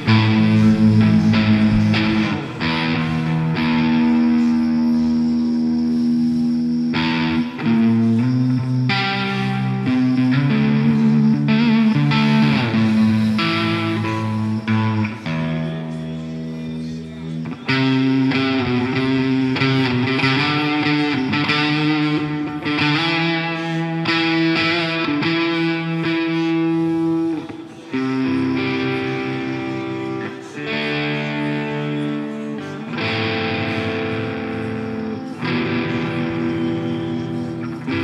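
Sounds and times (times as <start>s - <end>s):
worship band music: 0.0s - 15.5s
electric guitar chords: 0.0s - 38.0s.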